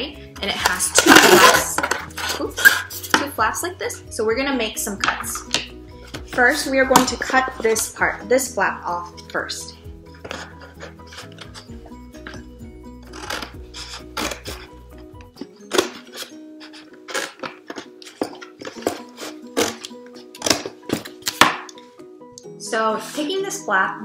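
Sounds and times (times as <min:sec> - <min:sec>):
background music: 0:00.0 - 0:24.0
scissors cutting cardboard: 0:10.2 - 0:12.4, 0:13.0 - 0:14.8, 0:15.4 - 0:21.6.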